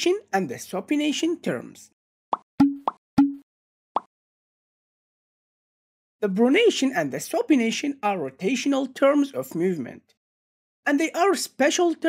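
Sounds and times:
cartoon pop sound effects: 2.3 - 3.4.

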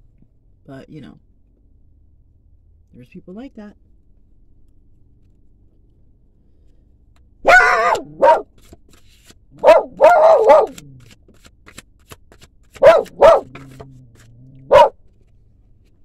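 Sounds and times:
dog barking: 7.4 - 8.5, 9.6 - 10.9, 12.8 - 13.8, 14.6 - 15.0.

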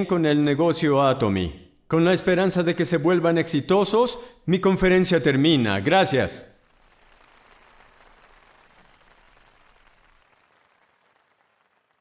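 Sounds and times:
faint audience applause: 6.5 - 12.0.

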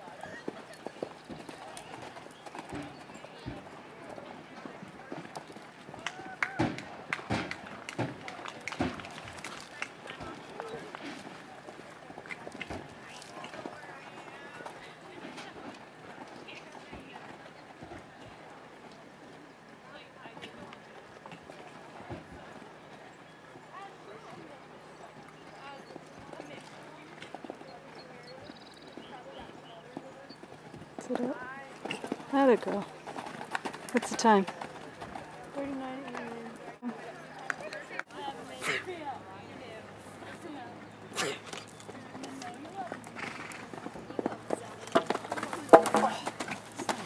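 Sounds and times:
faint voices: 0.0 - 47.0
people talking: 31.0 - 32.9, 33.9 - 47.0.

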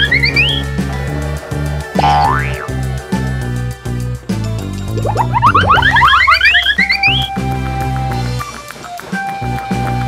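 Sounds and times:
rising cartoon whistle effects: 0.0 - 0.7, 5.0 - 7.6
upbeat background music: 0.0 - 10.0.

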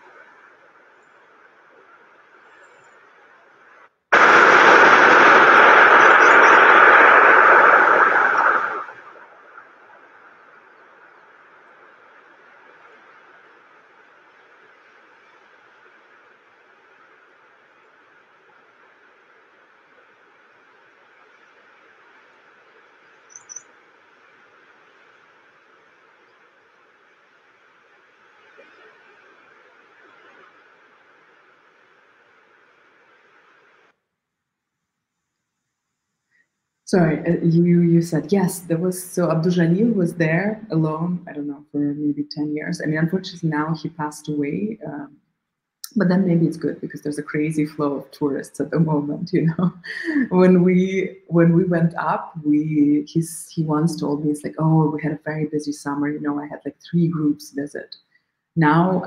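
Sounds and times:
faint background noise: 0.0 - 59.0
burst of rushing noise: 4.1 - 10.5.

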